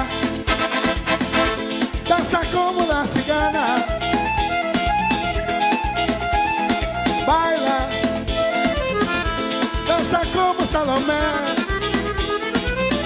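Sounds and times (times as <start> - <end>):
melodic lead line: 0.0 - 13.0
steady drum beat: 0.0 - 13.0.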